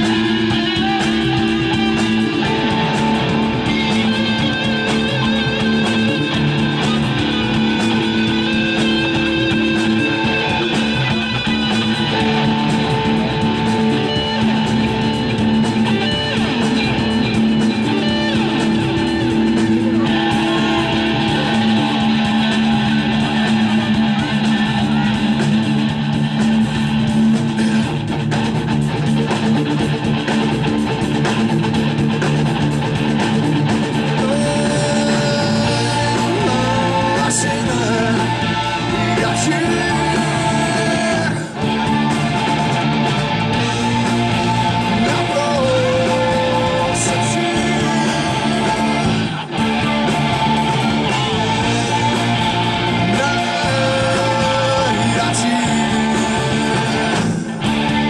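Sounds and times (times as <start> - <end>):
bass guitar: 0.0 - 58.0
drums: 0.0 - 58.0
live rock band playing: 0.0 - 58.0
strummed electric guitar: 0.0 - 58.0.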